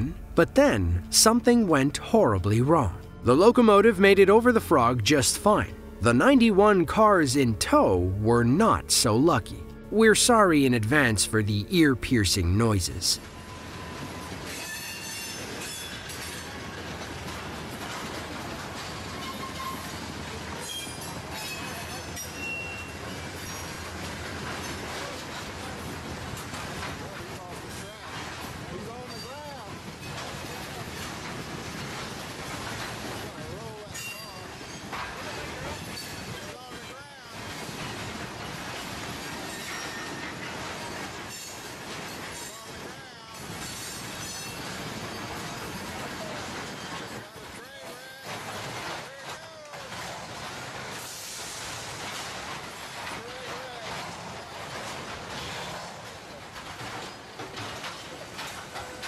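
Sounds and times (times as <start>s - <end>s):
train cars rolling: 0.0s - 59.0s
train clanks: 0.0s - 59.0s.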